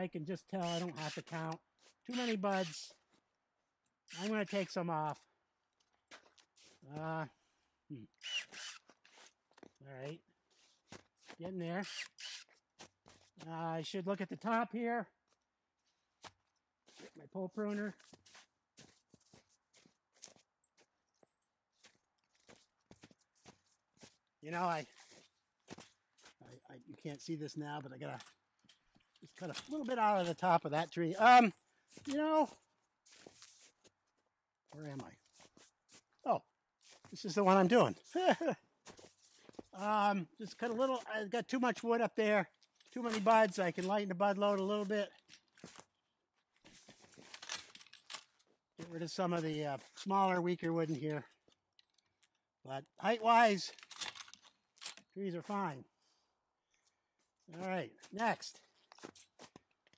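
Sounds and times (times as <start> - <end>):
soft footsteps: 17.9 - 24.2, 31.9 - 34.0
branches rustling and clicking: 46.6 - 48.5, 53.7 - 55.1.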